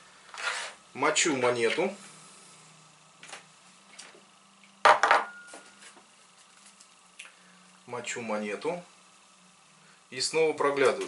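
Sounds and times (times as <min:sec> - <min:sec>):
glass bowl knocking on table: 0:04.8 - 0:05.5
faint glass ring: 0:05.1 - 0:05.8.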